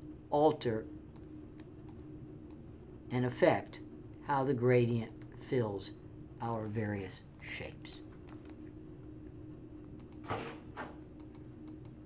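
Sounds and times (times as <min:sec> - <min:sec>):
low steady hum: 0:00.0 - 0:12.0
computer mouse clicks: 0:01.1 - 0:02.6, 0:09.9 - 0:10.3, 0:11.1 - 0:12.0.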